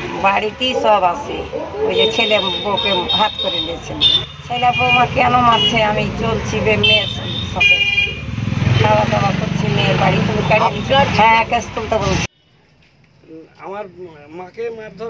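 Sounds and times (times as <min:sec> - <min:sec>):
people talking: 0:00.0 - 0:08.1, 0:08.7 - 0:12.3, 0:13.3 - 0:15.0
vehicle horns tooting: 0:01.9 - 0:11.4.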